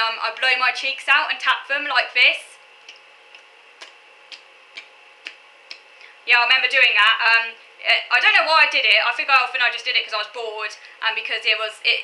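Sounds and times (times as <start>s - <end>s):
fingers tapping on cheeks: 2.8s - 5.9s.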